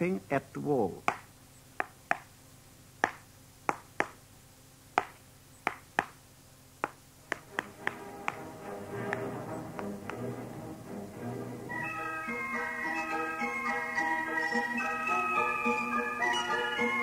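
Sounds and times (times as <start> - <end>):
hammer tapping on wall: 1.0 - 2.3, 3.0 - 4.2, 6.8 - 8.5
incidental music: 7.4 - 17.0.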